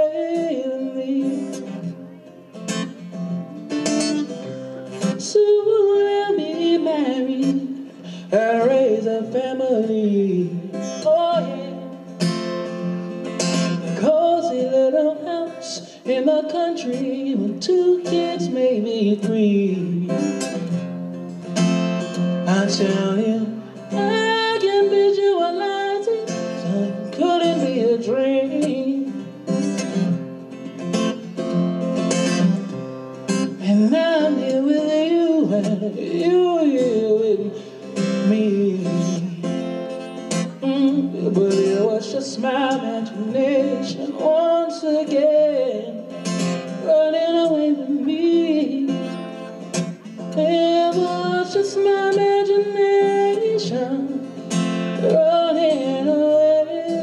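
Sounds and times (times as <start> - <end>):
man singing into microphone: 0.0 - 1.9, 5.0 - 11.9, 13.8 - 20.4, 22.4 - 29.2, 33.6 - 39.6, 40.6 - 49.2, 50.3 - 54.3, 54.9 - 57.0
acoustic guitar strumming: 0.0 - 57.0.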